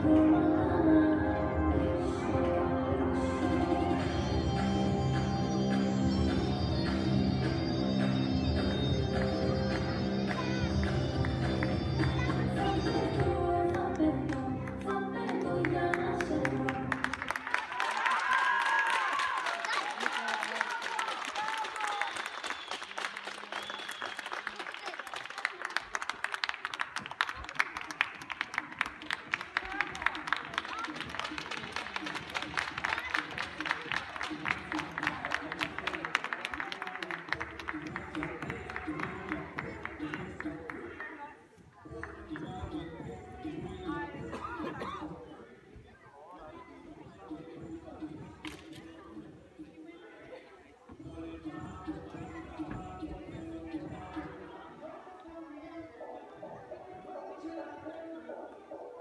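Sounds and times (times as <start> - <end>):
music playing: 0.0 - 17.6, 27.6 - 45.8, 46.8 - 49.9, 50.9 - 59.0
audience applause and cheering: 15.5 - 40.8.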